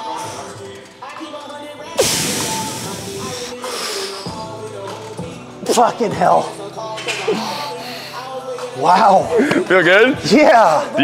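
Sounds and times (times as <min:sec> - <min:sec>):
background music: 0:00.0 - 0:11.0
man breathing hard: 0:02.0 - 0:04.5, 0:07.3 - 0:08.4.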